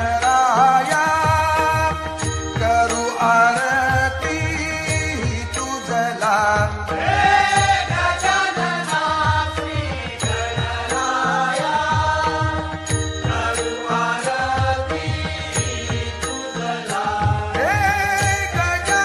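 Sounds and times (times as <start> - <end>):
metallic bell strikes: 0.0 - 19.0
person singing devotional melody: 0.0 - 19.0
low drum beat: 1.0 - 5.7.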